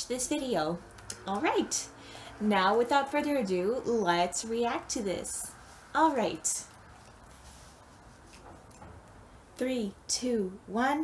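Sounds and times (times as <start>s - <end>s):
headphones knocking and rustling: 6.7s - 9.2s.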